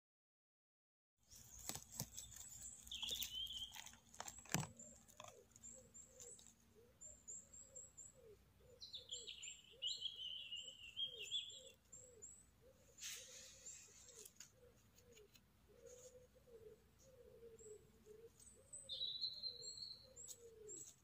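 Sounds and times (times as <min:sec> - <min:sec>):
bird chirps: 0:01.2 - 0:21.0
crackling of needles and twigs: 0:01.3 - 0:06.7, 0:13.0 - 0:16.1
wavering bird call: 0:05.3 - 0:21.0.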